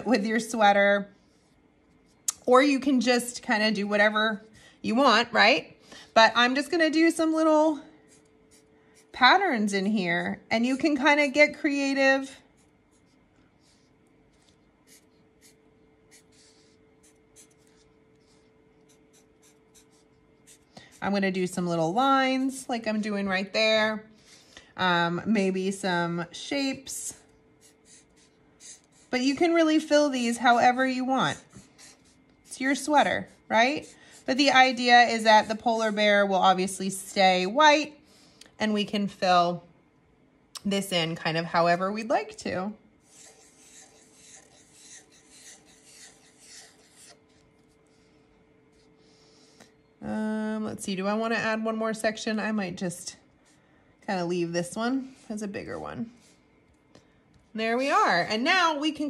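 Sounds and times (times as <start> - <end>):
marker scratching on paper: 8.1 - 9.6, 11.9 - 22.6, 27.6 - 35.0, 43.0 - 48.1, 55.1 - 56.4.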